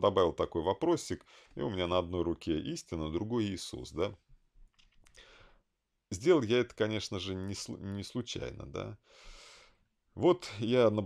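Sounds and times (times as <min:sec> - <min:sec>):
man speaking: 0:00.0 - 0:04.2, 0:06.1 - 0:09.0, 0:10.2 - 0:11.0
short breath in: 0:05.1 - 0:05.6, 0:09.0 - 0:09.8.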